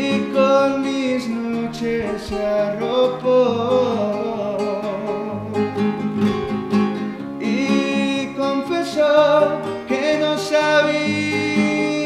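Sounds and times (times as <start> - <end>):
man singing slow melody: 0.0 - 6.0, 7.4 - 12.0
classical guitar playing: 0.0 - 12.0.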